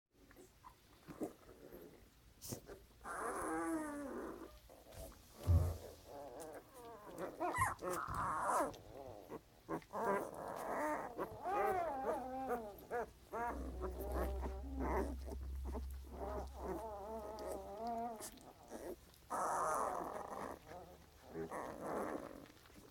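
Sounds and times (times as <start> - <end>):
puppies grunting and squeaking: 0.2 - 22.9
puppies whining: 0.3 - 22.9.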